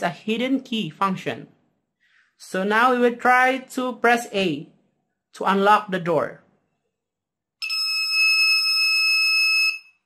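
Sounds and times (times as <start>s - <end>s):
electronic buzzer beep: 7.6s - 10.0s.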